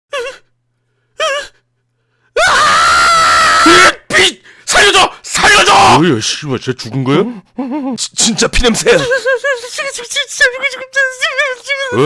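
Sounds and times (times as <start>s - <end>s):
man screaming in terror: 2.4s - 6.0s.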